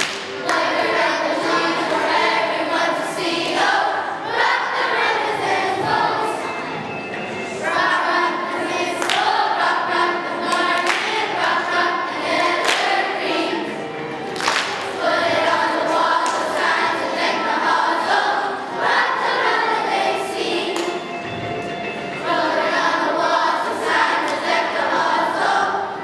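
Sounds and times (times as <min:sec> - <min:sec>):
children's choir singing: 0:00.0 - 0:26.0.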